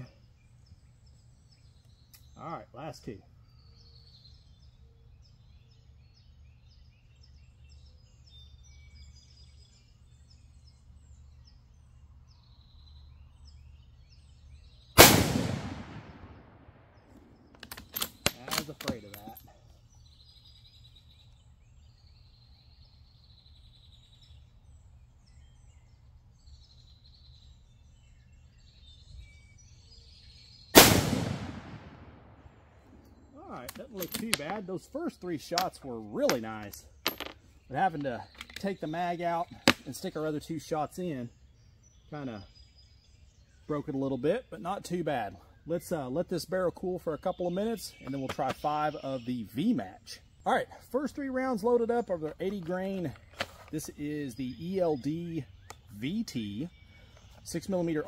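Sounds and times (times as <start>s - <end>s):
rifle shots with echo: 15.0s - 17.4s, 30.8s - 32.8s
rifle bolt metallic clicks: 17.5s - 19.4s, 32.9s - 34.6s.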